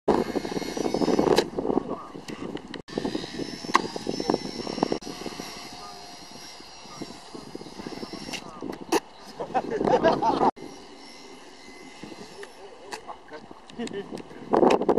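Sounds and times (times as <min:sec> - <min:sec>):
toy helicopter motor whine: 0:00.1 - 0:01.4, 0:02.9 - 0:08.6, 0:10.5 - 0:13.1.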